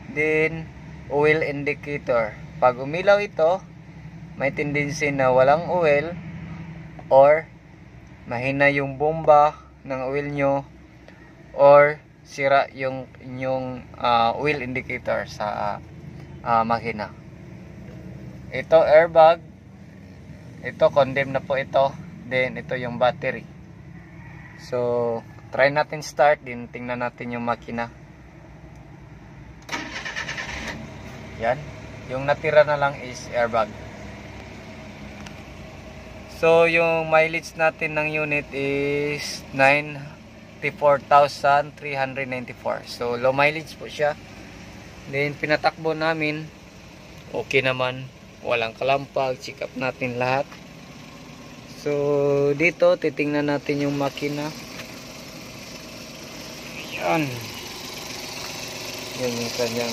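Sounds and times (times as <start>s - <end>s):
truck engine starting and running: 0.0s - 59.9s.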